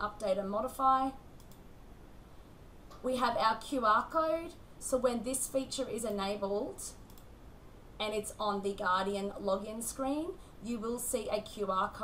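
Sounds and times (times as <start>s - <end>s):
computer mouse clicks: 1.4s - 1.7s, 6.9s - 7.3s.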